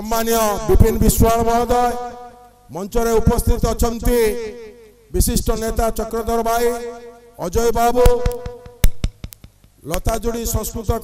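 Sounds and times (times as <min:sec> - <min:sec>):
man speaking into a microphone: 0:00.0 - 0:08.8, 0:09.8 - 0:11.0
sharp clicks: 0:08.0 - 0:10.2.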